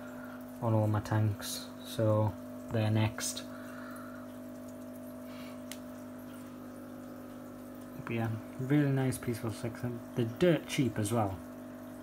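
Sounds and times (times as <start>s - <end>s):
aquarium equipment humming: 0.0s - 12.0s
water trickling: 0.0s - 12.0s
faint ticks: 5.6s - 6.4s.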